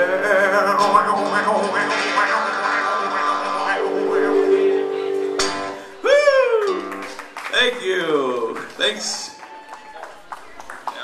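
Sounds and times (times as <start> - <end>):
man singing: 0.0 - 4.6
strummed guitar: 0.0 - 7.8
person shouting: 6.0 - 6.9.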